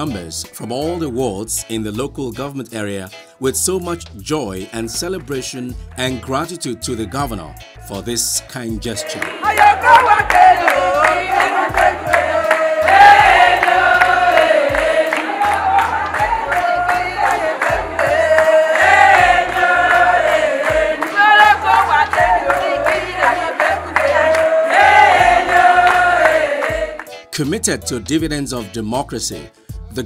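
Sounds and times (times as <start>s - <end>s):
regular beat: 8.8s - 27.3s
women singing together: 9.6s - 27.0s.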